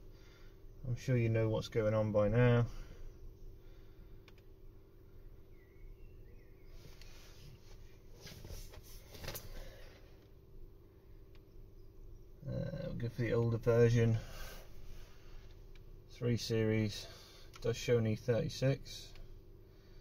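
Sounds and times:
faint steady hum: 0.0s - 20.0s
light rustling: 6.7s - 10.4s.

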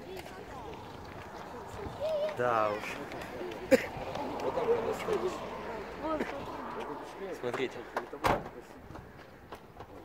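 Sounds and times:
brief thump: 8.0s - 8.6s.

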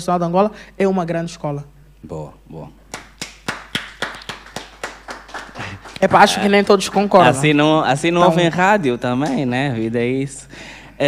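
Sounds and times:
hand clapping: 2.9s - 7.4s, 9.2s - 9.5s.

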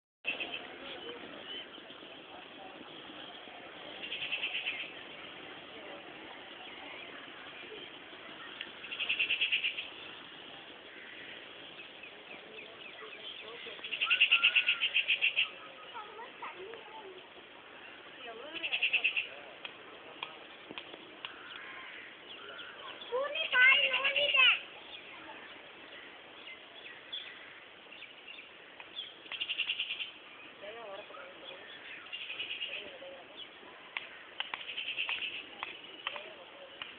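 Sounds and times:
outdoor background hiss: 0.2s - 36.9s
small birds chirping: 0.2s - 36.9s.

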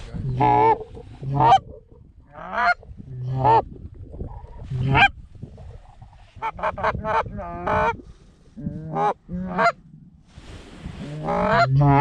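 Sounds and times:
goose call clucks: 0.4s - 1.6s, 8.8s - 9.8s, 11.2s - 12.0s.

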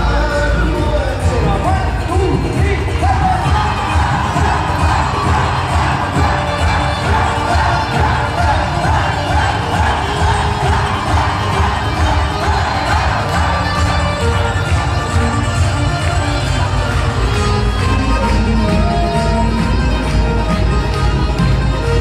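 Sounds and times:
loud live music: 0.0s - 22.0s
audience cheering and shouting: 1.3s - 22.0s.

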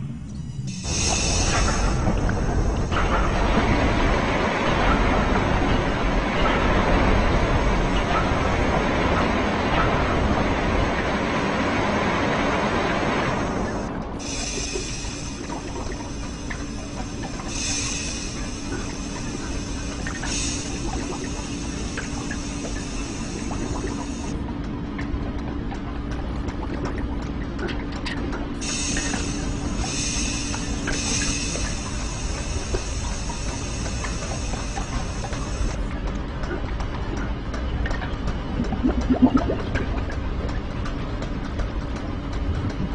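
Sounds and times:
machine hum with whining tones: 0.0s - 42.9s
loud hissing rush: 0.7s - 4.0s, 13.2s - 24.3s, 28.6s - 35.8s.

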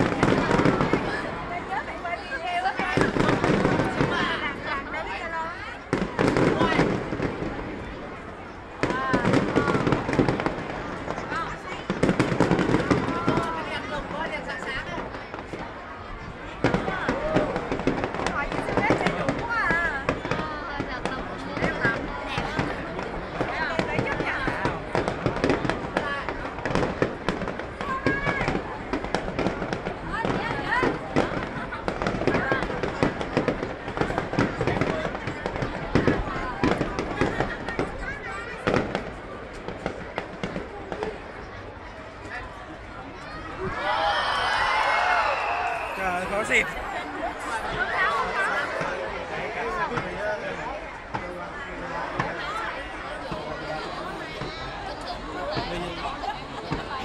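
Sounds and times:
fireworks bursting and crackling: 0.0s - 41.6s, 45.0s - 57.0s.

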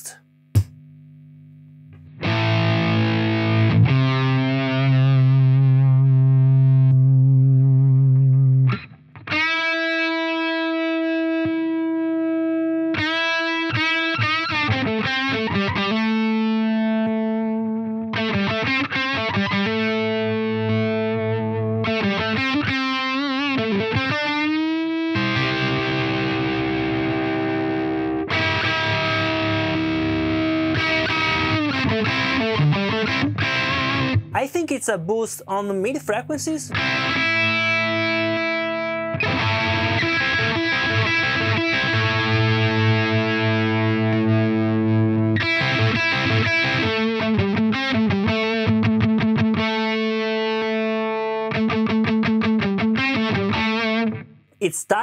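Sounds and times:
distorted electric guitar: 1.8s - 34.5s, 35.1s - 55.0s.

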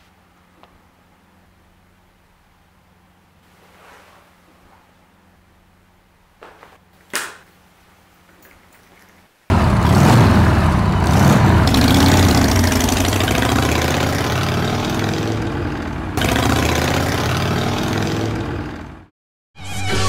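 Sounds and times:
motorcycle engine revving: 9.5s - 19.1s.

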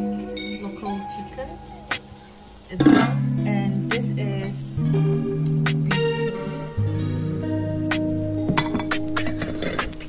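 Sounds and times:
background music with held tones: 0.0s - 10.0s
dishes clinking: 8.5s - 9.8s.

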